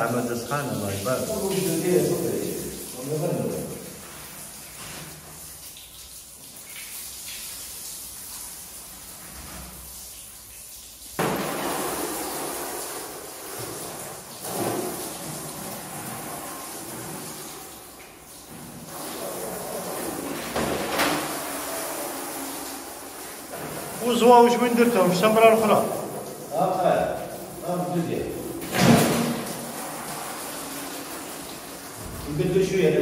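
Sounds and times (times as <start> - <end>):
water running from garden hose: 0.0 - 33.0.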